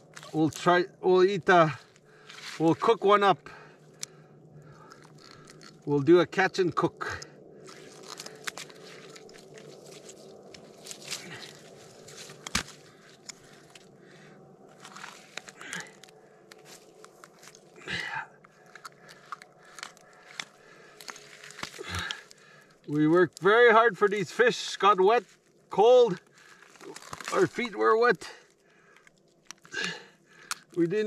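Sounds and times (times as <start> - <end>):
snow and slushy ice crunching: 1.4 - 3.3, 7.6 - 28.2.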